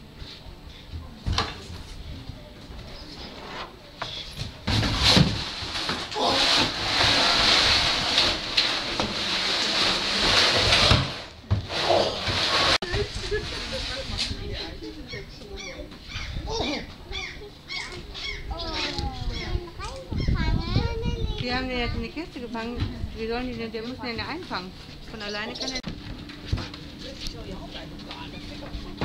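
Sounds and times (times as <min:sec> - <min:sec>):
plastic crate scraping on floor: 0:04.7 - 0:14.4.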